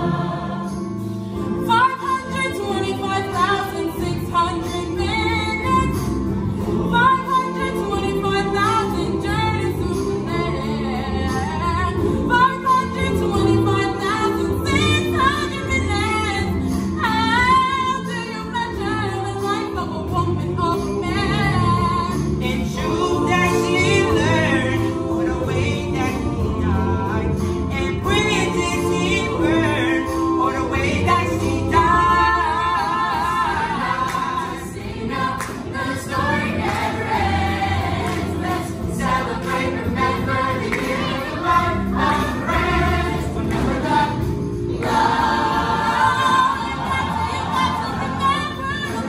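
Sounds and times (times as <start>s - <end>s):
chorus of voices: 0.0s - 49.0s
woman singing gospel: 1.6s - 44.2s, 44.8s - 49.0s.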